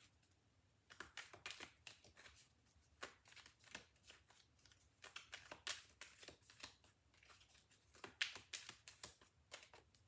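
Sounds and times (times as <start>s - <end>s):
cards being shuffled: 0.8s - 10.0s.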